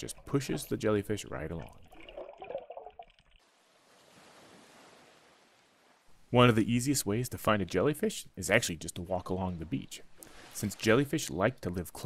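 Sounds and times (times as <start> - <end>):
soft underwater water sound: 0.0 - 6.5, 8.9 - 12.0
low steady hiss: 3.4 - 12.0.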